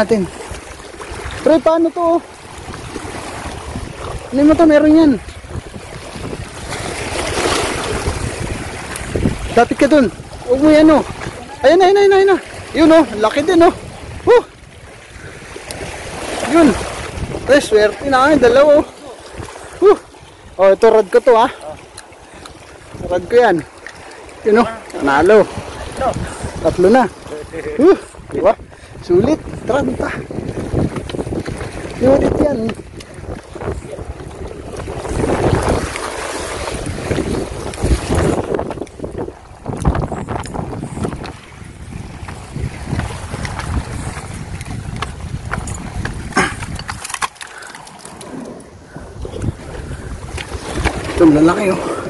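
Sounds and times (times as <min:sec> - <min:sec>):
sea waves washing against rocks: 0:00.0 - 0:52.0
wind buffeting microphone: 0:00.0 - 0:52.0.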